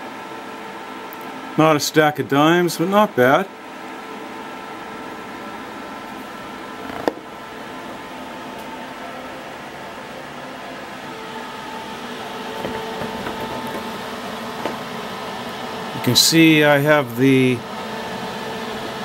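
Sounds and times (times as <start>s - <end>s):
welder cooling fan hum: 0.0s - 19.0s.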